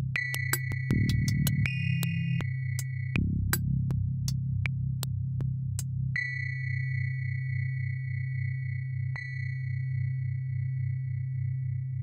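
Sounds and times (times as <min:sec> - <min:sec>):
low pulsing bass drone: 0:00.9 - 0:02.4, 0:03.2 - 0:05.4.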